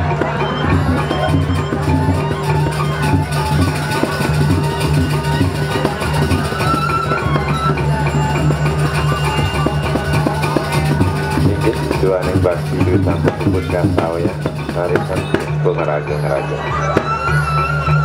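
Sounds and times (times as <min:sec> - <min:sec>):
gamelan ensemble playing: 0:00.0 - 0:18.0.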